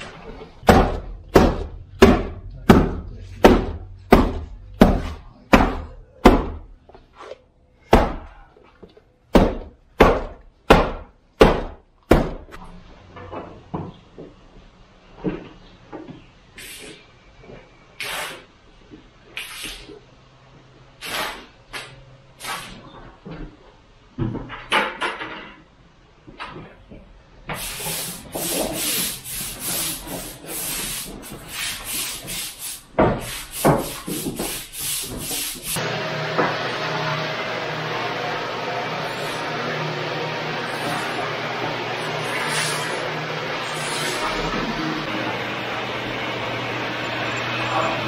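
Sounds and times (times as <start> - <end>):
scrub brush scrubbing wet concrete: 27.6 - 35.8, 40.3 - 45.0
steady machine drone: 35.8 - 48.0.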